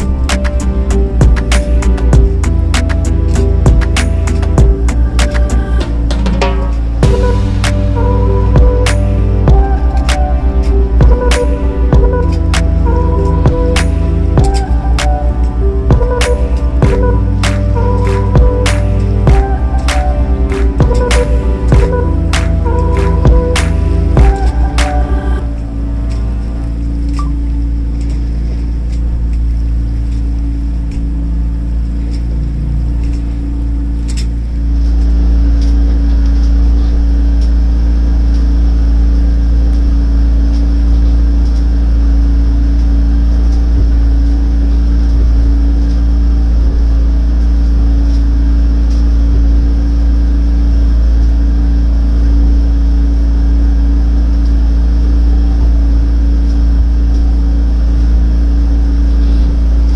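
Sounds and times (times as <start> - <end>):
boat motor running: 0.0 - 59.9.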